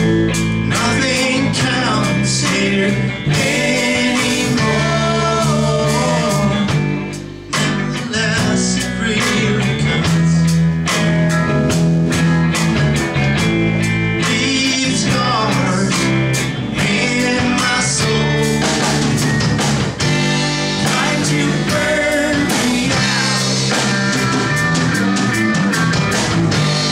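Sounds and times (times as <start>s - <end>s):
bass guitar: 0.0s - 26.9s
drum kit beat: 0.0s - 26.9s
electric guitars: 0.0s - 26.9s.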